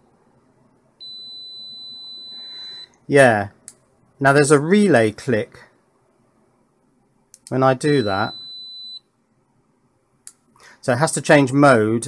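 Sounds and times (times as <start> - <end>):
multimeter continuity beep: 1.0 - 3.0, 7.8 - 9.1.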